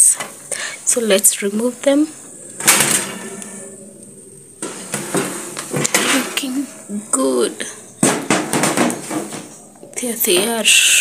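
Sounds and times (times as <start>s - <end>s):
metal baking tray clattering: 2.6s - 3.7s, 4.6s - 9.6s.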